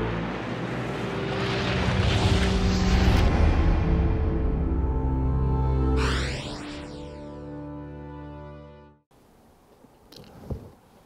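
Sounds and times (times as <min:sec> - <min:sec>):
whooshing sound effect: 0:01.0 - 0:04.4, 0:05.9 - 0:07.4.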